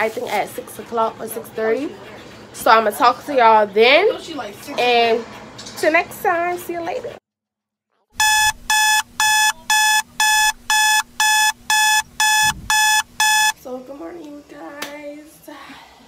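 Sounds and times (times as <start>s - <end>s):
alarm beeping: 8.2s - 13.6s.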